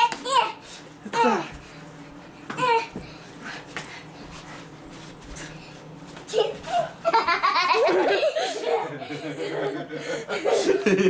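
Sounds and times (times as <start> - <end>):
person laughing loudly: 6.4 - 11.0.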